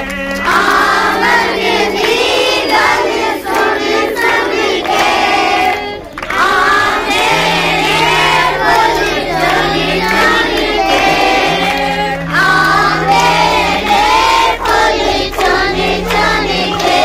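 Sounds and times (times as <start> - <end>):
children singing in unison: 0.0 - 17.0
woman leading singing: 0.4 - 17.0
low held note: 7.0 - 16.8.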